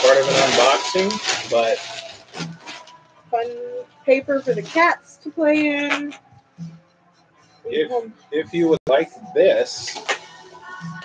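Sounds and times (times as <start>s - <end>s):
packing paper rustling: 0.0s - 3.0s.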